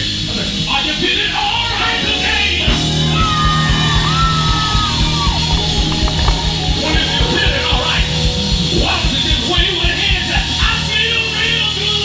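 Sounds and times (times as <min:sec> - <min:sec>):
live blues band: 0:00.1 - 0:11.4
high sliding note: 0:02.0 - 0:10.0.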